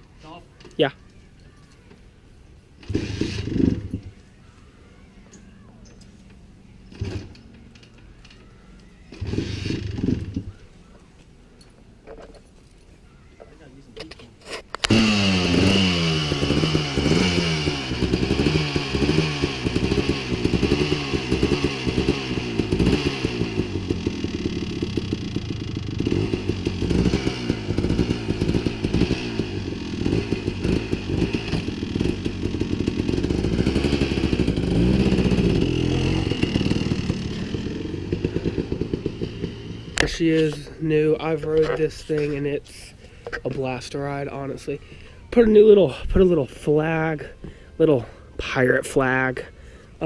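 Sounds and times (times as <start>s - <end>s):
quad engine revving: 2.8s - 4.2s, 6.8s - 8.5s, 9.1s - 10.6s, 14.8s - 42.9s.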